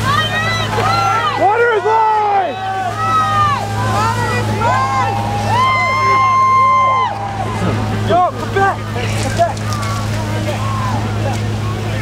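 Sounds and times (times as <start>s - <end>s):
distant crowd calling and shouting: 0.0s - 12.0s
low engine hum: 0.0s - 12.0s.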